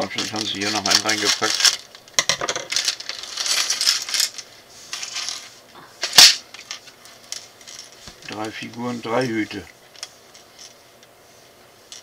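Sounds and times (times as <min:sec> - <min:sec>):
plastic bag crinkling: 0:00.0 - 0:10.8
plastic parts clattering on table: 0:00.2 - 0:04.4.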